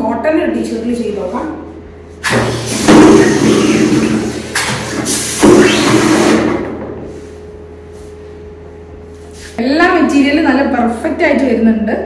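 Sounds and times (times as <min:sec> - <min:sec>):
compressed air hissing: 0:02.2 - 0:06.4.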